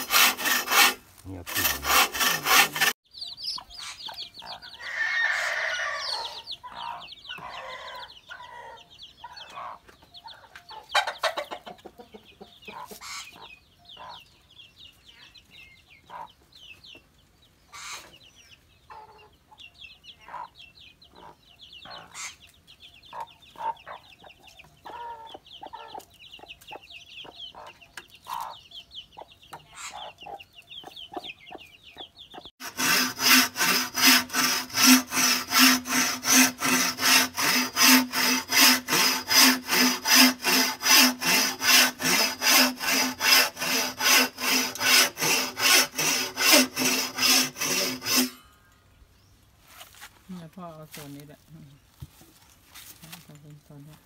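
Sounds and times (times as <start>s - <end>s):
saw cutting bamboo pole: 0.0s - 3.0s, 32.6s - 48.4s
chickens clucking: 1.3s - 4.9s, 6.1s - 14.5s, 15.1s - 32.5s
chicks cheeping: 3.0s - 5.1s, 5.7s - 32.5s.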